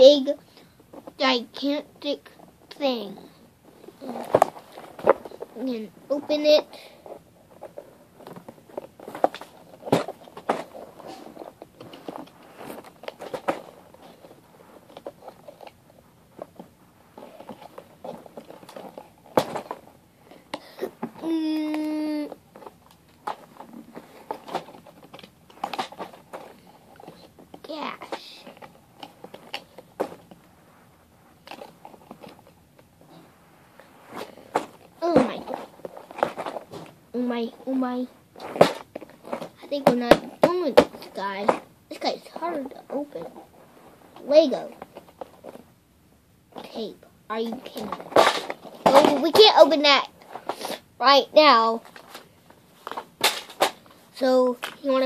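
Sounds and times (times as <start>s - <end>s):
child's voice holding a note: 21.2s - 22.4s, 48.9s - 50.1s.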